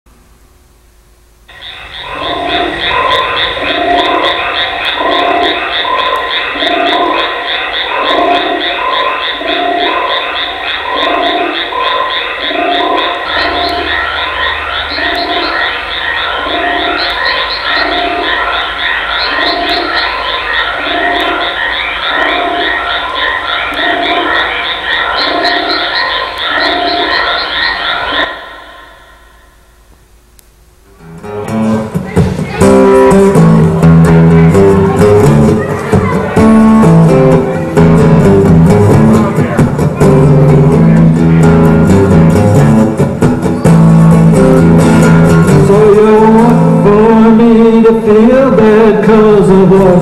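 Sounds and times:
chorus of croaking trills: 1.5s - 30.1s, 31.3s - 50.0s
deeper croaking layer: 1.5s - 30.1s, 31.2s - 50.0s.

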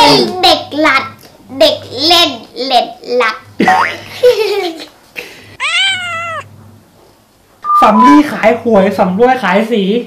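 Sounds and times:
cat meow: 5.6s - 6.5s
person speaking: 7.6s - 8.4s.

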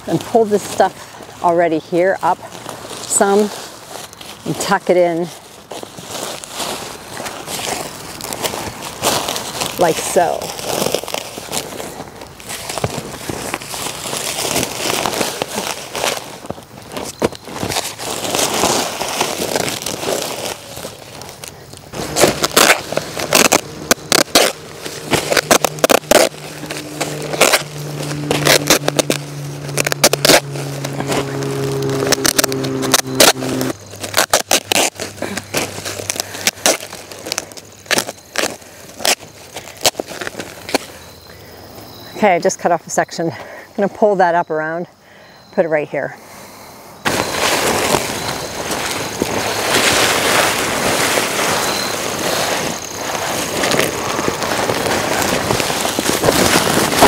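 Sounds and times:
fabric rustling over ground: 0.0s - 44.6s, 46.0s - 57.0s
steady low hum: 5.4s - 41.9s
fabric crackling as cut: 5.6s - 40.9s, 47.1s - 57.0s.

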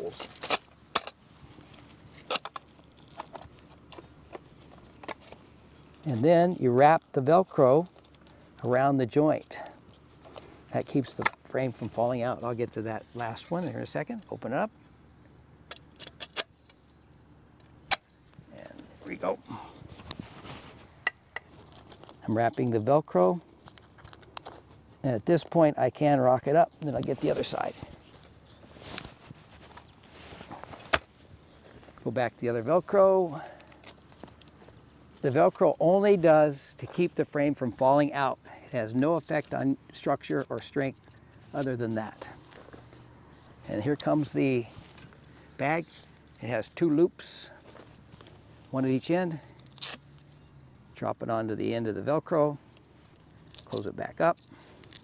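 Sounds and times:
fabric rustling: 19.5s - 22.2s, 27.1s - 32.0s.

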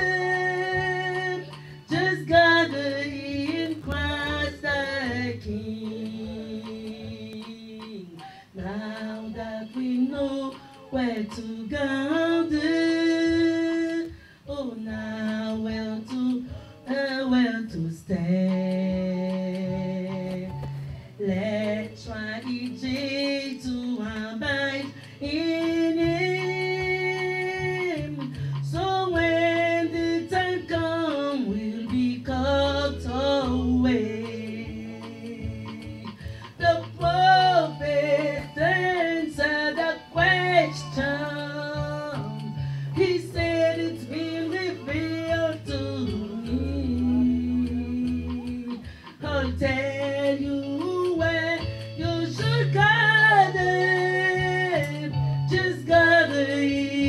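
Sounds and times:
instrumental accompaniment: 0.0s - 57.0s
woman singing into a microphone: 0.0s - 57.0s.

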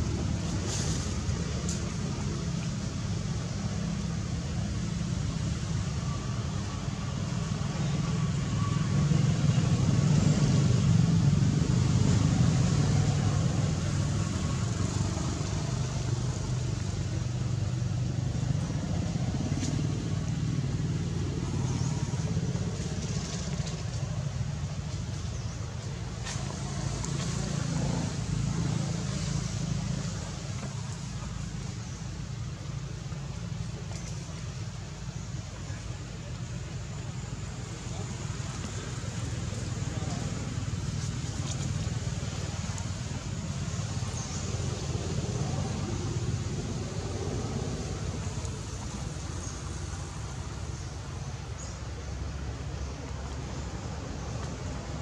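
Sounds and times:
steady low rumble: 0.0s - 55.0s.

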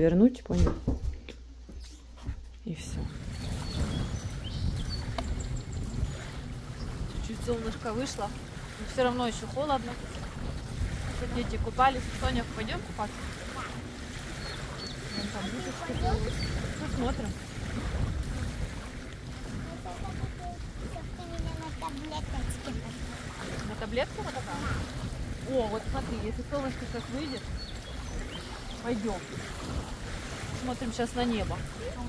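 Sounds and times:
birds chirping: 2.7s - 32.0s
wind buffeting microphone: 2.8s - 32.0s
faint voices: 7.2s - 17.8s, 19.3s - 29.6s.

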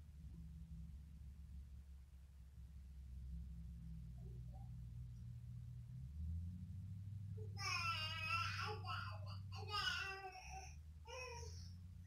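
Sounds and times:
young child crying: 7.6s - 11.6s.

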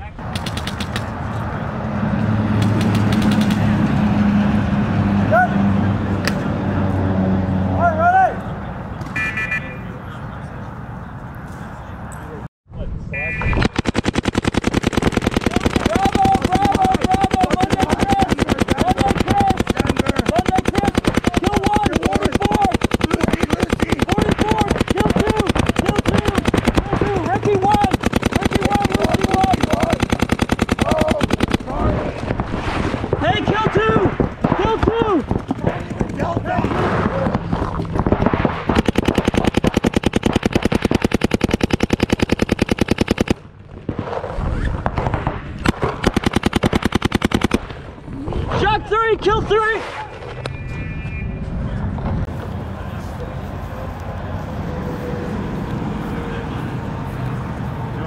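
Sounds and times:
paintball markers firing rapidly: 0.3s - 1.2s, 2.5s - 3.8s, 13.4s - 32.4s, 33.1s - 43.4s, 44.8s - 47.8s.

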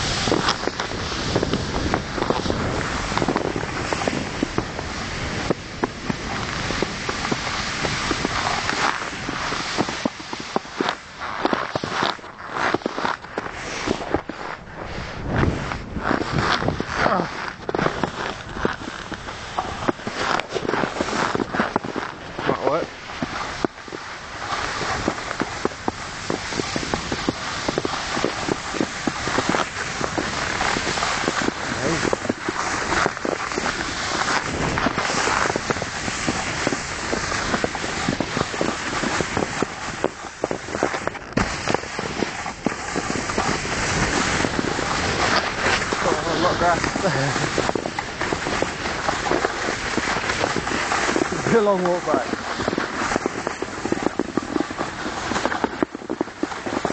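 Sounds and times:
constant rushing noise: 0.0s - 56.9s
footsteps crunching through snow: 0.0s - 56.9s.

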